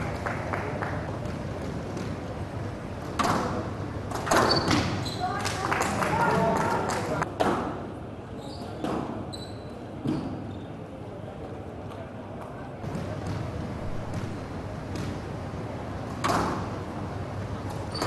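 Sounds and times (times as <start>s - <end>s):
squash ball impacts: 12.8s - 15.4s, 16.1s - 16.8s.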